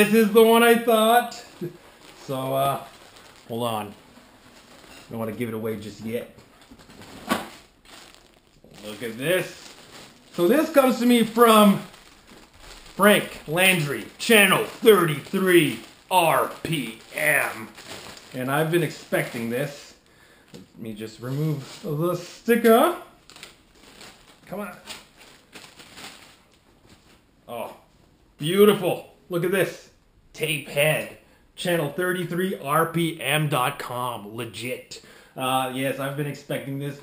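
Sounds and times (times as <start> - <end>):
plastic packaging crinkling: 0.0 - 27.3
handling noise: 1.5 - 19.5.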